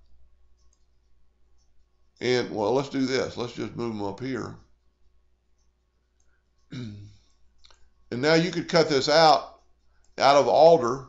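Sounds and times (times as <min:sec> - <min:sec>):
faint mouse clicks: 0:00.0 - 0:02.3, 0:04.2 - 0:08.1
low room hum: 0:00.0 - 0:11.0.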